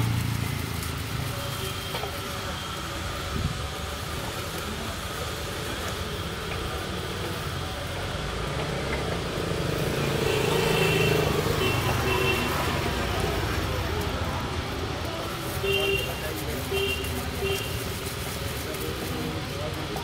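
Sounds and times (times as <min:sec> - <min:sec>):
vehicle passing: 0:00.0 - 0:01.8, 0:07.7 - 0:19.7
road traffic noise: 0:00.0 - 0:20.0.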